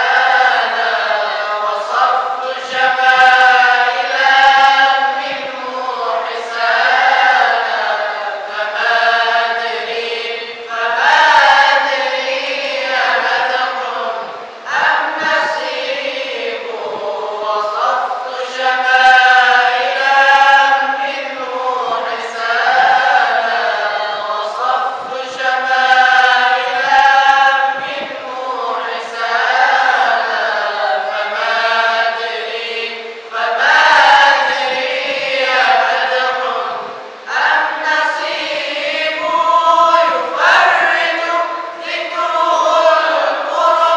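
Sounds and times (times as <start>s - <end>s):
male voices chanting together: 0.0s - 43.9s.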